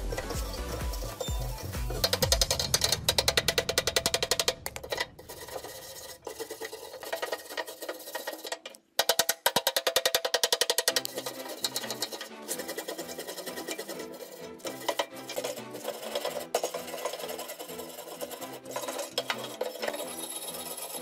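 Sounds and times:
metal blade scraping steel tube: 0.0 - 9.2, 9.8 - 21.0.

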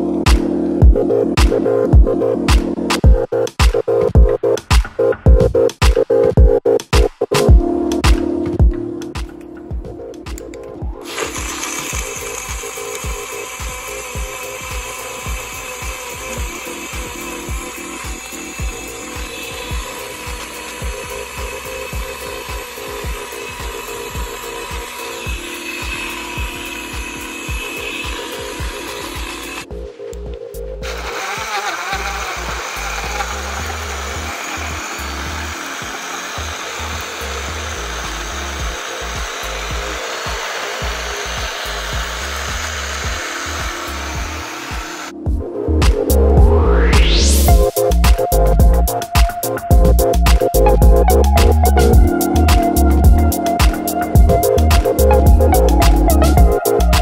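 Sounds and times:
blender motor whirring: 11.0 - 29.7, 30.8 - 45.2, 46.4 - 57.0.

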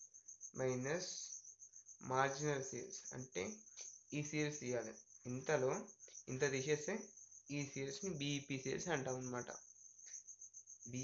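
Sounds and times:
cricket trilling: 0.0 - 11.0
man talking: 0.6 - 1.3, 2.0 - 3.6, 4.2 - 9.6.

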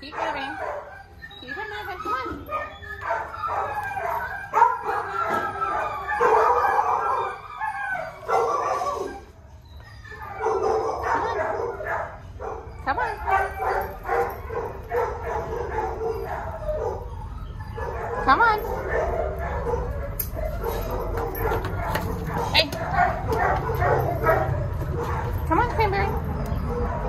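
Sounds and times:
dogs barking: 0.0 - 27.0.

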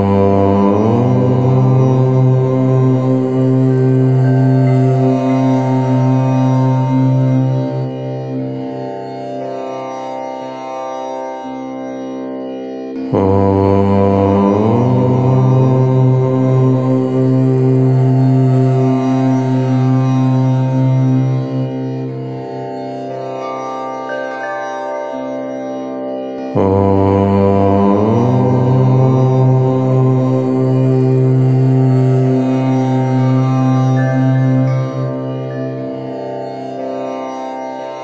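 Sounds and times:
man chanting om: 0.0 - 10.1, 13.0 - 25.5, 26.3 - 38.0.

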